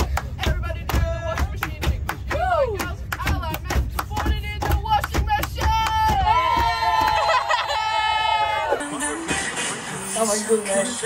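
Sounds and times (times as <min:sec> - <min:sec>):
women clapping in rhythm: 0:00.0 - 0:07.5
low bus rumble: 0:00.0 - 0:11.0
women chanting and singing a cheer: 0:00.1 - 0:07.4.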